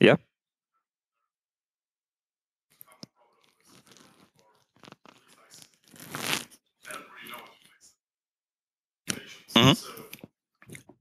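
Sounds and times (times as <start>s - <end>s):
rustling handling noise: 3.6s - 6.5s
person sipping from cup: 5.9s - 6.5s.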